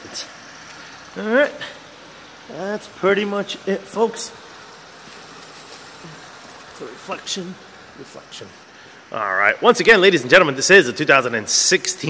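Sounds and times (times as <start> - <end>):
man speaking: 0.0 - 0.4, 1.2 - 1.9, 2.5 - 4.5, 6.0 - 12.0
steady background hiss: 0.0 - 12.0.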